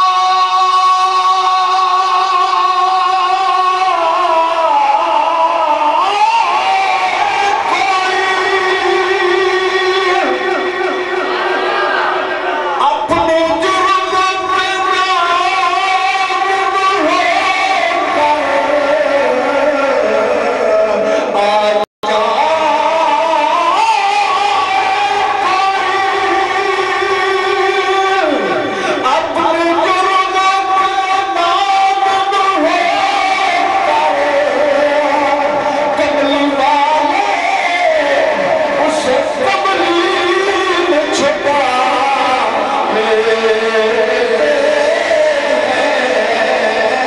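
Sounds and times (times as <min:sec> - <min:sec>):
man chanting into microphone: 0:00.0 - 0:11.4, 0:12.7 - 0:47.0
man singing a long note: 0:00.0 - 0:11.4, 0:12.8 - 0:47.0.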